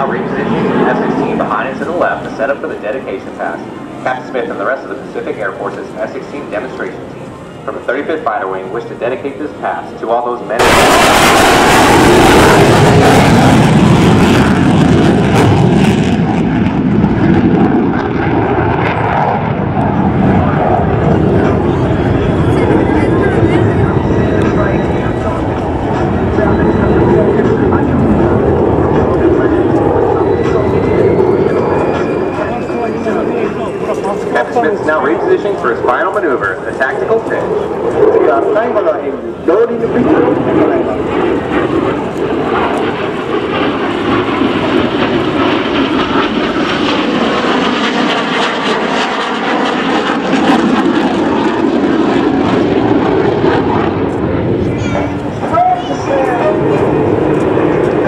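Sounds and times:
fighter jet roaring overhead: 0:00.0 - 0:58.0
faint rising whine: 0:18.0 - 0:40.0.

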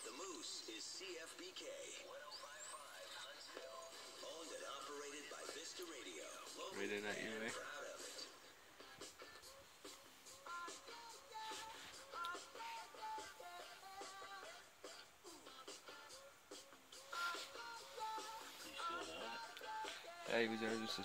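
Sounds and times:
faint music from radio: 0:00.0 - 0:21.0.

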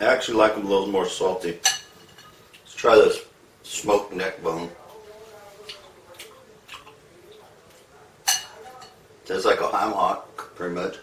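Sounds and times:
metal spoon clinking on bowl: 0:01.6 - 0:02.4, 0:08.2 - 0:09.0.

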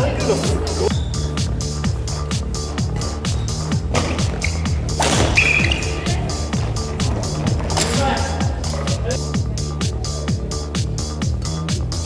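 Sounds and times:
electronic music with steady beat: 0:00.0 - 0:12.0.

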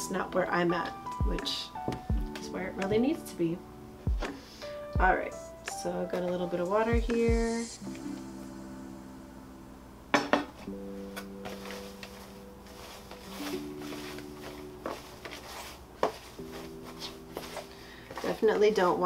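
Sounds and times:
soft background music chords: 0:00.0 - 0:19.0.

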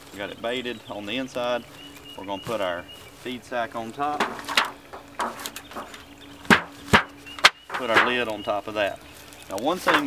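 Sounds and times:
soft rustle: 0:00.0 - 0:10.0
lid knocking on wooden box: 0:04.2 - 0:08.2.

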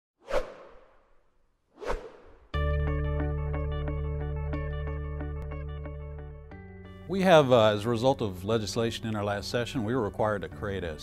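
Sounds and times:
whoosh sound effects: 0:00.2 - 0:01.2.

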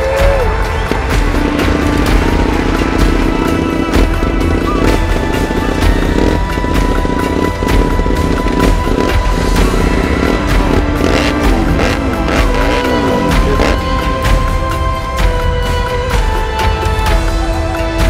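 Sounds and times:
motorcycle engine running loudly: 0:00.0 - 0:17.4
music playing: 0:00.0 - 0:18.0.

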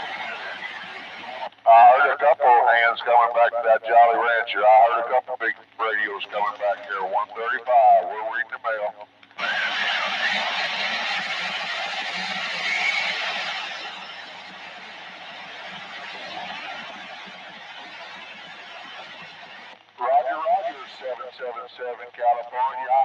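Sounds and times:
radio static: 0:00.0 - 0:23.0
faint voice over radio: 0:01.2 - 0:10.6, 0:20.0 - 0:23.0.

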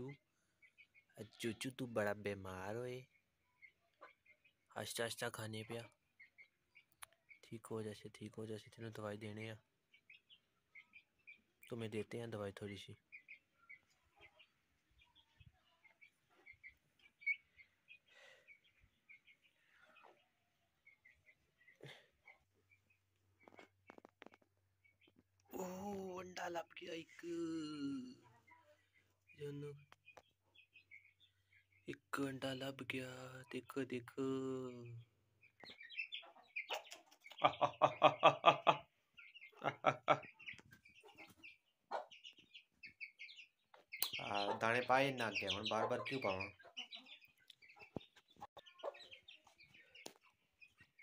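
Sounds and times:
chicks peeping: 0:00.0 - 0:51.0
hen clucking: 0:03.5 - 0:51.0
man laughing: 0:37.4 - 0:38.9, 0:39.6 - 0:40.3.

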